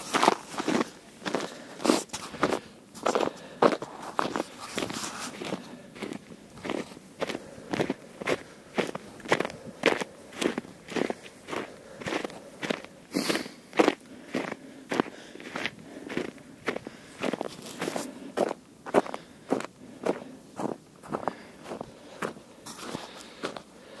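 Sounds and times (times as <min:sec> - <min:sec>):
footsteps crunching in snow: 0:00.0 - 0:23.7.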